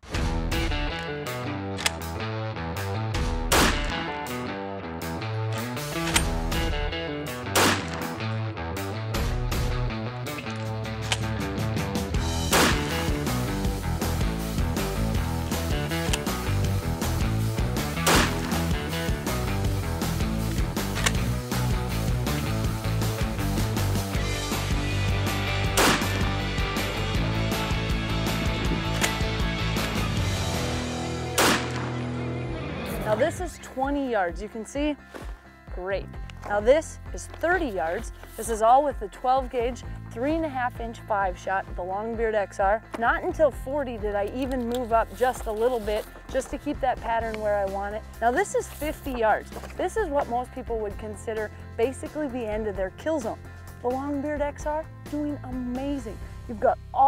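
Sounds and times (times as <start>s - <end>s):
background music with steady beat: 0.0s - 57.0s
loud shotgun shots: 3.4s - 4.1s, 7.5s - 8.2s, 12.5s - 13.1s, 18.0s - 18.7s, 25.7s - 26.4s, 31.3s - 32.0s.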